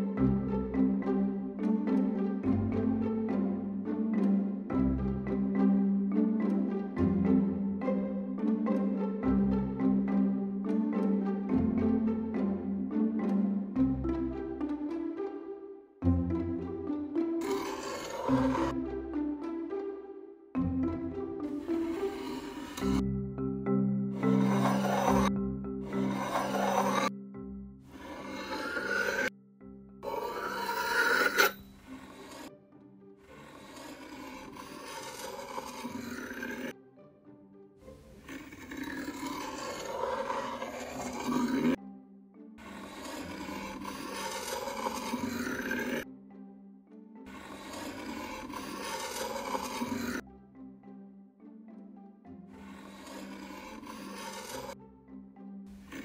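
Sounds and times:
knife scraping through sand: 0:17.4 - 0:18.7, 0:21.6 - 0:23.0, 0:24.2 - 0:25.3, 0:25.9 - 0:27.1, 0:28.0 - 0:29.3, 0:30.0 - 0:32.5, 0:33.3 - 0:36.7, 0:38.2 - 0:41.8, 0:42.6 - 0:46.0, 0:47.3 - 0:50.2, 0:52.6 - 0:54.8.

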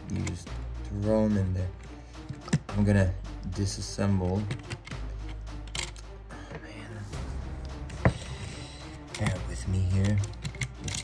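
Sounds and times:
soft background music: 0:00.0 - 0:11.0
plastic bricks clicking: 0:09.0 - 0:11.0.

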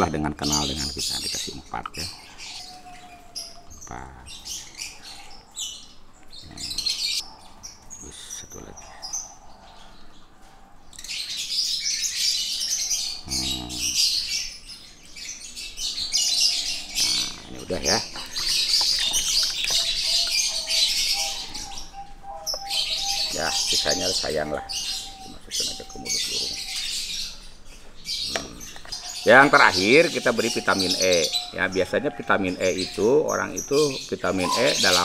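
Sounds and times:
small birds chirping: 0:00.0 - 0:35.0.

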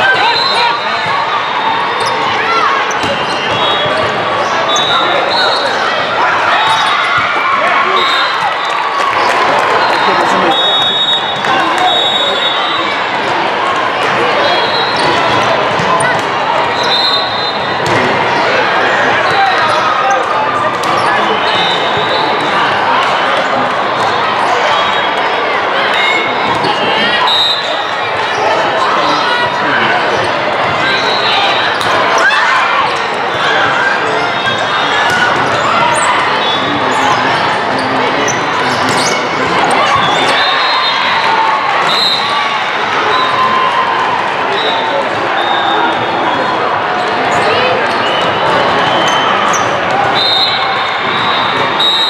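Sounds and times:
babble of many voices: 0:00.0 - 0:52.0.

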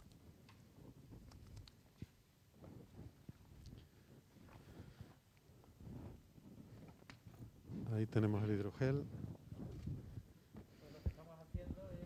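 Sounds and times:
small clicks: 0:01.2 - 0:01.8.

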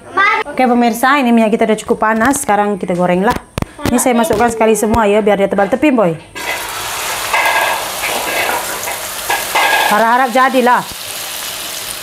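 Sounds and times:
batter sizzling in hot oil: 0:06.4 - 0:12.0.

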